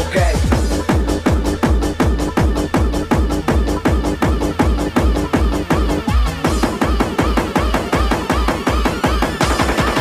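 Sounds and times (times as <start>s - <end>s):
fast kick drum: 0.0s - 10.0s.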